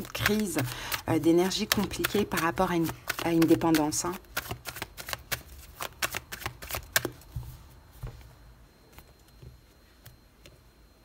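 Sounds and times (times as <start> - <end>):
cards shuffled by hand: 0.0 - 7.2.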